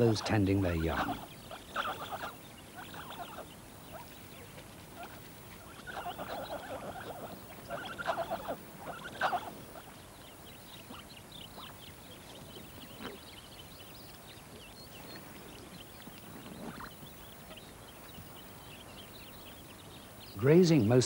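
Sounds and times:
hyraxes squeaky chattering calls: 0.0 - 4.2, 5.0 - 11.8
faint high twittering: 0.0 - 21.0.

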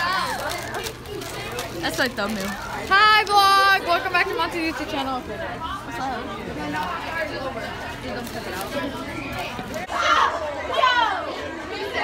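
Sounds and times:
teenagers talking: 0.0 - 12.0.

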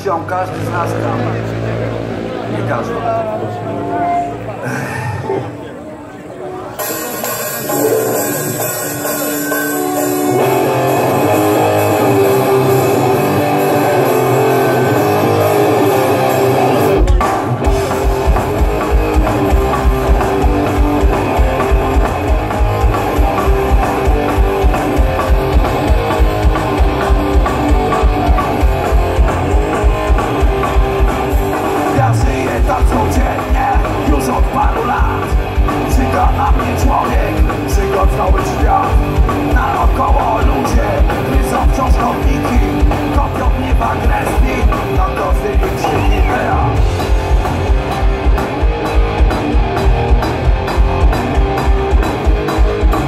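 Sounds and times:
electric guitar: 0.0 - 53.0
bass guitar: 6.6 - 53.0
drum kit fast beat: 6.8 - 53.0.

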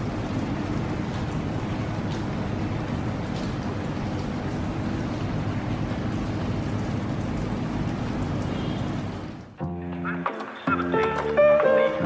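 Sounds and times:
steady rain downpour: 0.0 - 12.0
music: 9.6 - 12.0.

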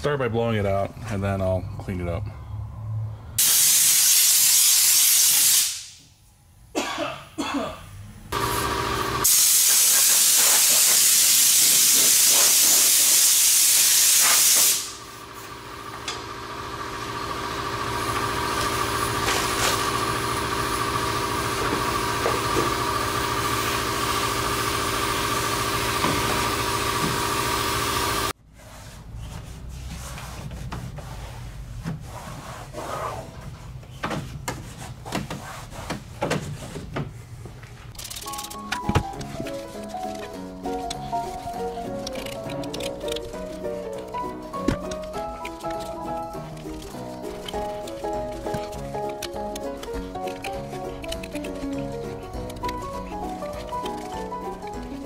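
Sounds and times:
compressed air blow gun hissing: 9.2 - 15.1
machine hum with whine: 14.9 - 28.4
faint rubbing: 28.6 - 33.6.

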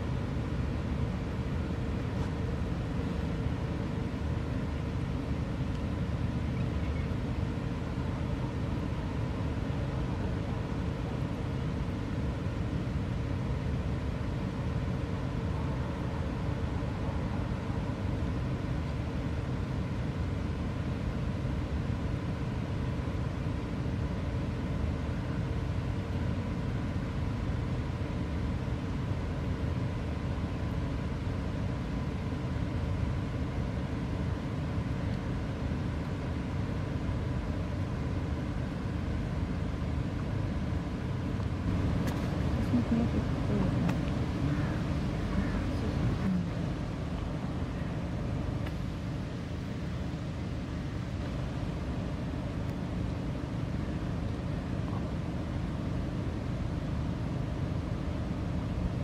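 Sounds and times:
distant traffic rumble: 0.0 - 59.0
faint constant hum: 0.0 - 59.0.

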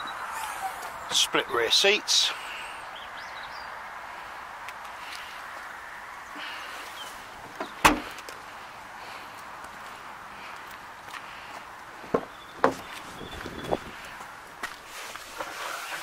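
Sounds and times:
car tailgate shutting thud: 7.6 - 8.1.

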